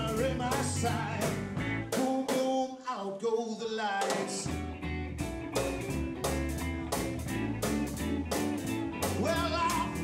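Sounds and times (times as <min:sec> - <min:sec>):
electric guitars: 0:00.0 - 0:02.1, 0:04.1 - 0:10.0
drum kit beat: 0:00.0 - 0:02.6, 0:04.0 - 0:10.0
man singing: 0:00.0 - 0:04.6, 0:09.0 - 0:10.0.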